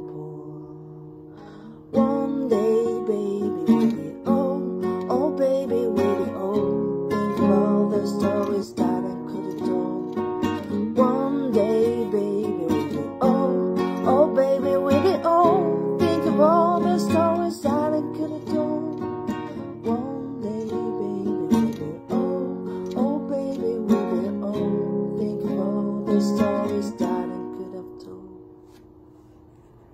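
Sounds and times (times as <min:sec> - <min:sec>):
acoustic guitar strumming: 0:00.0 - 0:29.0.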